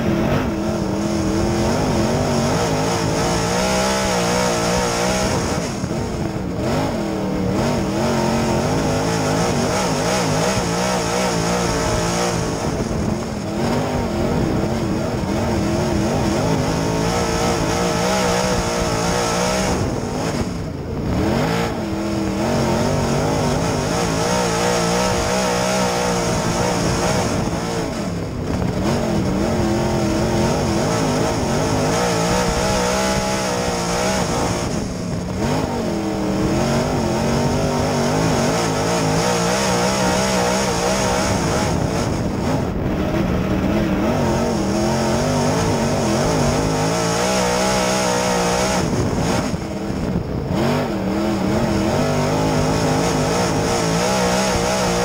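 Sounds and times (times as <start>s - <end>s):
race car engine at speed: 0.0s - 55.0s.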